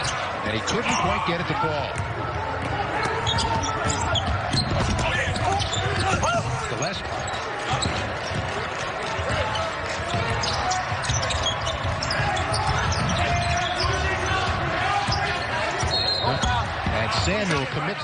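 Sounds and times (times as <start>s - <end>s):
sneaker squeaks: 3.0s - 8.6s, 9.2s - 16.6s.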